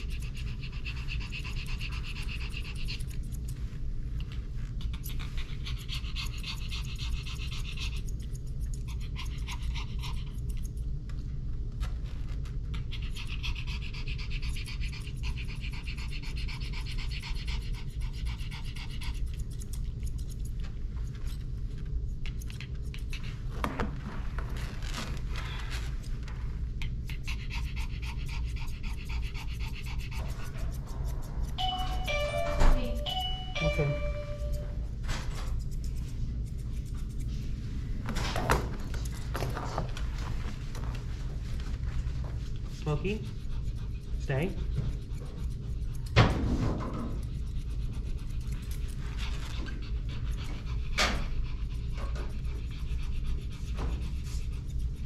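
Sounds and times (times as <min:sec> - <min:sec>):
dog panting rapidly: 0:00.0 - 0:11.2, 0:12.4 - 0:24.6, 0:25.2 - 0:55.0
steady low hum: 0:00.0 - 0:55.0.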